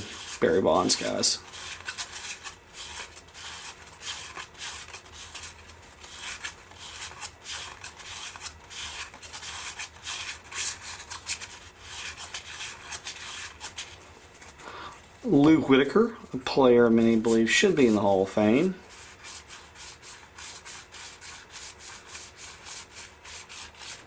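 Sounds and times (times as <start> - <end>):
cards sliding against each other: 0.0 - 15.1.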